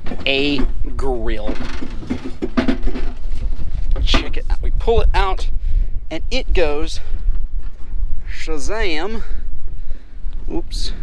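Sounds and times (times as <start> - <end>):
metal grill knocking and scraping: 0.0 - 4.5
steady low rumble: 0.0 - 11.0.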